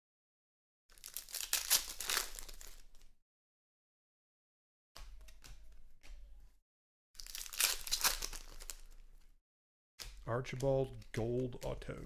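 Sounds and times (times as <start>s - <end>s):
trading cards rustling: 0.9s - 3.0s, 7.2s - 9.2s.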